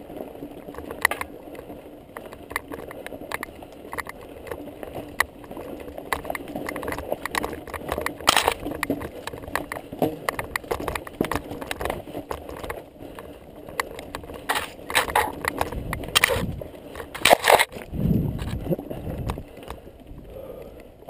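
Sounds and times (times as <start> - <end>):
bike rattling and clattering: 0.0 - 21.0
bike tyres crunching on stones: 0.0 - 21.0.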